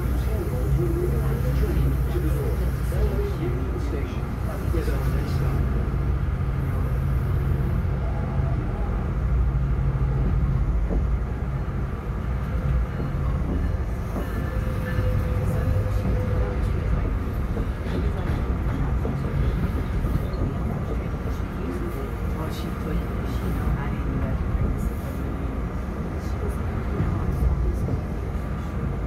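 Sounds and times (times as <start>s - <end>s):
train rumble inside passenger car: 0.0s - 29.0s.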